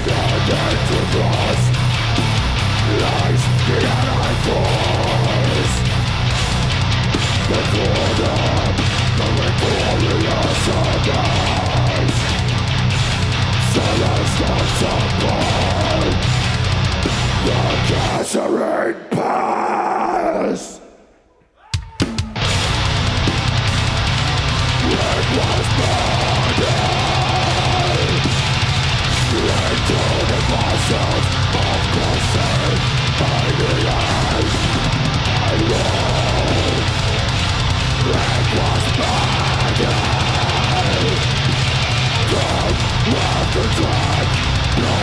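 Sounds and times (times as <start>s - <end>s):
live heavy metal band: 0.0s - 20.8s, 21.8s - 45.0s.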